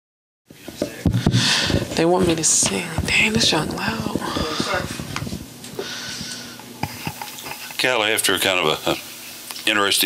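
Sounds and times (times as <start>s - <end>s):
microphone handling knocks: 0.5s - 5.5s
breathy hiss: 3.8s - 7.8s.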